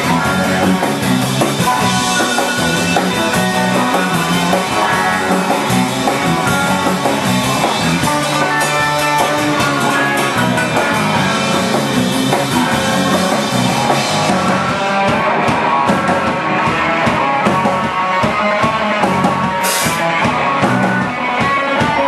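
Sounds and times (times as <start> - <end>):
drum kit: 0.0 - 22.0
electric guitars: 0.0 - 22.0.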